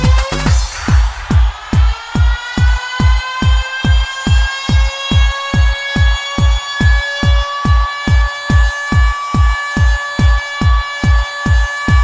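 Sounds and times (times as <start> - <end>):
four-on-the-floor kick drum: 0.0 - 12.0.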